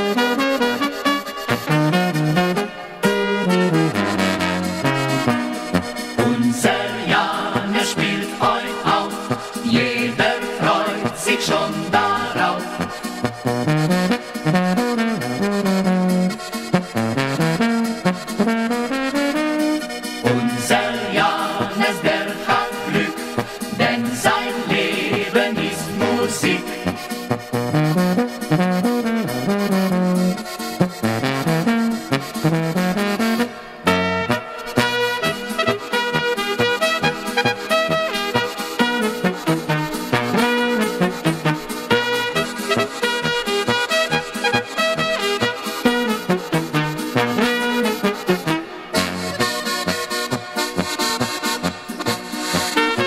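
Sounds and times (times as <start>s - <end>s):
brass melody in held notes: 0.0s - 7.4s, 10.3s - 53.0s
polka band playing: 0.1s - 53.0s
oom-pah beat from bass and guitar: 3.7s - 33.4s.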